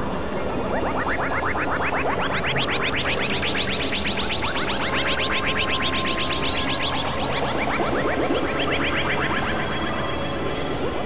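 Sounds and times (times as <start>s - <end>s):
upward-sweeping synth blips: 0.0s - 11.0s.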